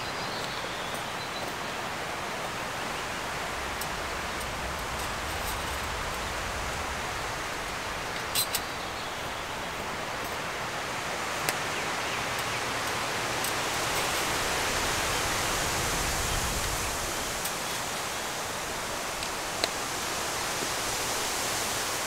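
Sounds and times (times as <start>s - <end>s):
wind rushing in trees: 0.0s - 22.0s.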